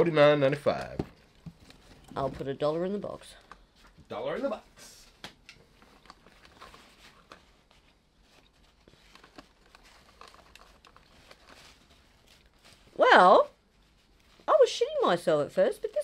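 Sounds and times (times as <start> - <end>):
small handling clicks and rustles: 5.1 - 12.8.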